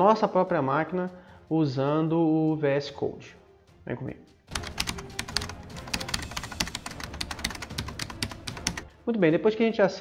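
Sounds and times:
fast typing on keyboard: 4.5 - 8.9.

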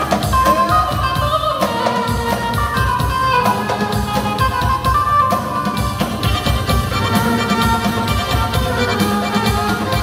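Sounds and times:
hand drum: 0.0 - 10.0
keyboard: 0.0 - 10.0
violin melody: 0.3 - 10.0.

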